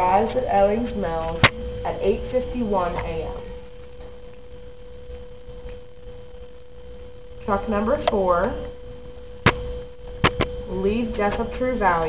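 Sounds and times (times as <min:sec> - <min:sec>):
faint low rumble: 0:00.0 - 0:12.0
steady single tone: 0:00.0 - 0:12.0.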